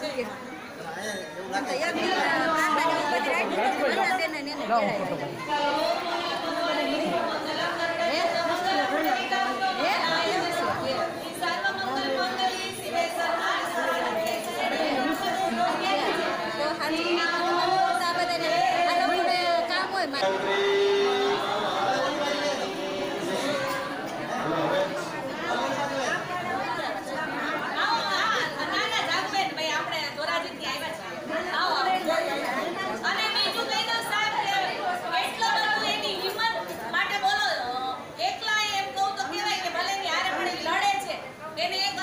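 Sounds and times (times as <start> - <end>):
crowd chatter in echoing hall: 0.0 - 42.0.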